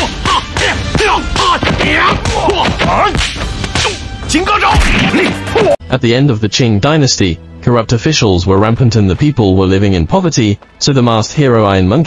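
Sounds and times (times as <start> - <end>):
fighters shouting: 0.0 - 5.8
thwacking blows: 0.0 - 5.8
fight film music: 0.0 - 5.9.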